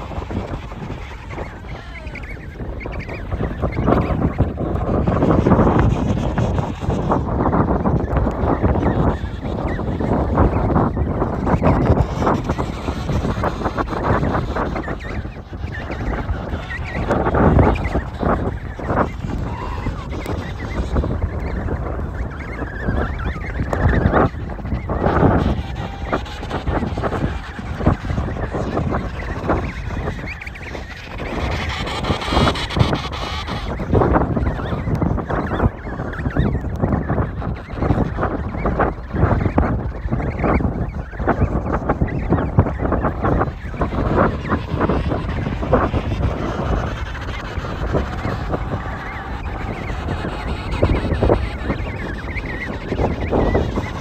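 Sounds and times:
penguin calls: 0.0s - 10.4s, 11.2s - 39.4s, 42.8s - 54.0s
wind buffeting microphone: 0.0s - 54.0s.

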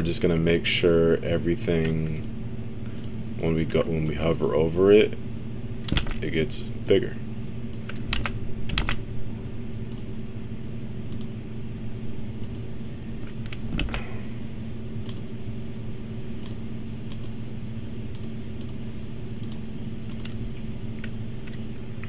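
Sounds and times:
steady low hum: 0.0s - 22.0s
keyboard and mouse clicks: 1.8s - 3.2s, 9.9s - 10.1s, 11.1s - 11.3s, 12.4s - 14.1s, 15.0s - 15.3s, 16.4s - 17.4s, 18.1s - 18.8s, 19.4s - 20.4s, 21.0s - 21.6s.

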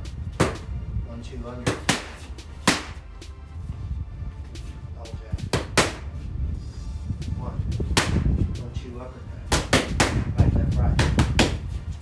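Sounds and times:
background music: 0.0s - 12.0s
boxing gloves hitting pads: 0.4s - 0.7s, 1.6s - 3.0s, 5.5s - 6.1s, 7.9s - 8.3s, 9.5s - 11.7s.

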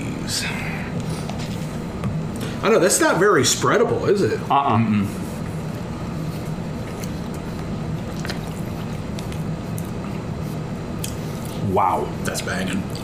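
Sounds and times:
low background hum: 0.0s - 13.0s
people chewing wetly: 6.3s - 10.3s.

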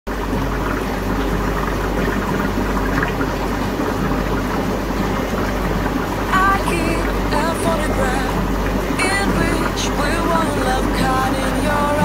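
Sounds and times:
low electrical hum: 0.1s - 12.0s
water trickling in filter: 0.1s - 12.0s.

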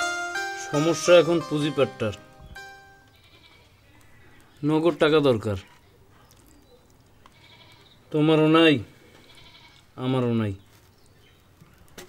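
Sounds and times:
person speaking: 0.0s - 2.4s
soft background music: 0.0s - 3.2s.

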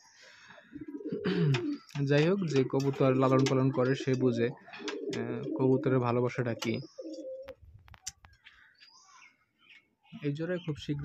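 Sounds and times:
pigeons cooing: 0.0s - 7.6s.

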